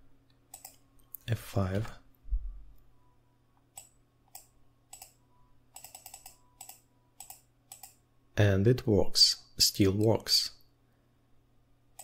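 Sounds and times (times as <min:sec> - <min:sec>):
computer mouse clicking: 0:00.4 - 0:01.2, 0:03.7 - 0:08.0.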